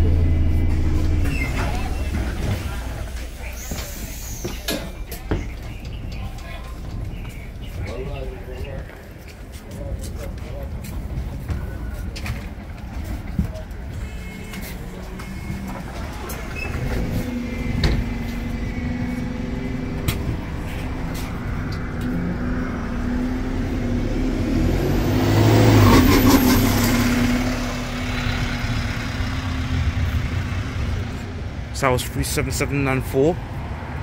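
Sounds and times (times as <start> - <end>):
bus engine pulling away: 0.0 - 34.0.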